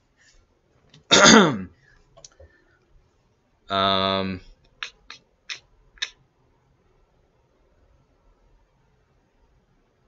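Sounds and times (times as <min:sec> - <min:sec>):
man clearing his throat: 0:01.1 - 0:01.7.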